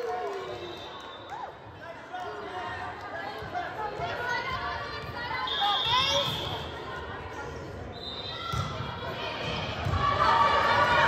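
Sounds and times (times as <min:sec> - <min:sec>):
voices echoing in gym: 0:00.0 - 0:11.0.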